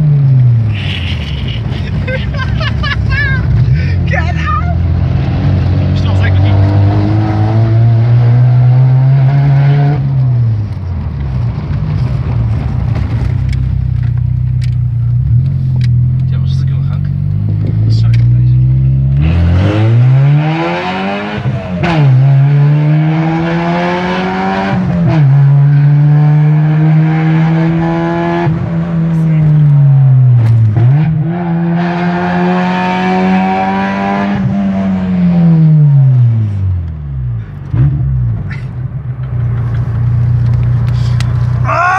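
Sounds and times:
loud car engine accelerating: 0:04.7 - 0:14.5, 0:15.1 - 0:41.7.

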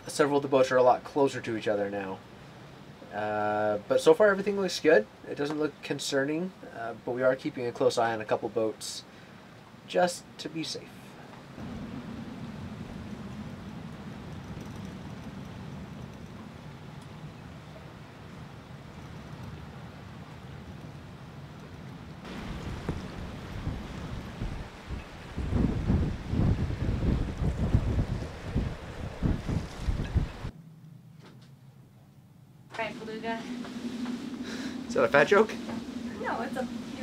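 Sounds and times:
storm wind rumbling: 0:11.5 - 0:30.5, 0:32.8 - 0:37.0
wind gusts buffeting microphone: 0:11.6 - 0:30.5, 0:32.8 - 0:37.0.

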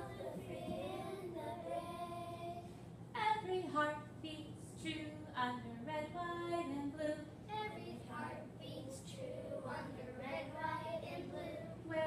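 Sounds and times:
young children singing: 0:00.0 - 0:02.6, 0:07.5 - 0:12.0.

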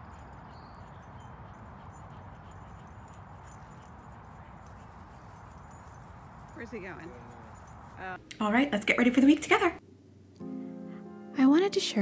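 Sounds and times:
high ticks and jingles: 0:00.0 - 0:08.2
outdoor background noise: 0:00.0 - 0:12.0.

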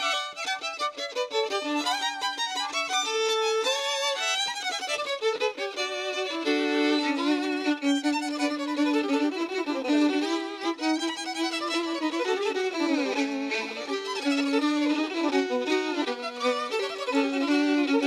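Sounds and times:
violin playing a melody: 0:00.0 - 0:18.0.

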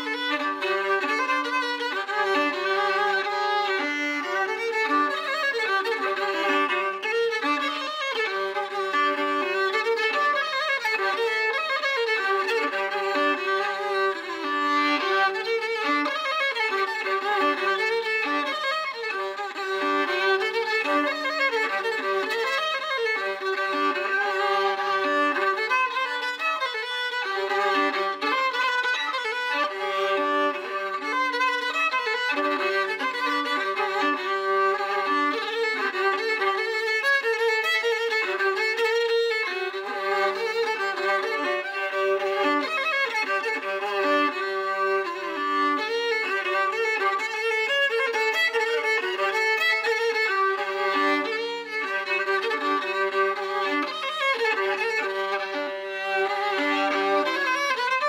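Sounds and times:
fiddle playing folk tune: 0:00.0 - 0:58.0.

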